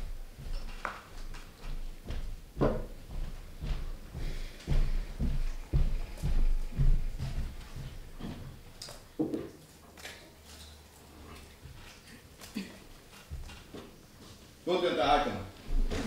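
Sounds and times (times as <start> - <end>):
heavy footsteps thudding: 0.0 - 8.7, 15.6 - 16.0.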